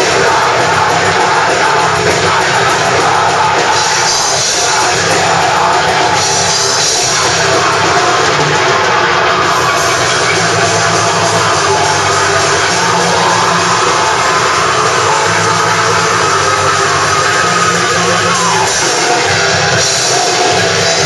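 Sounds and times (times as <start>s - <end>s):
distorted electric guitars: 0.0s - 21.0s
drum kit playing: 0.0s - 21.0s.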